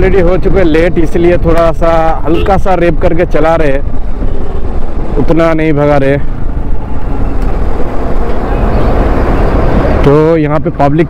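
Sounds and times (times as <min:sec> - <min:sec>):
wind rush over microphone: 0:03.7 - 0:10.9.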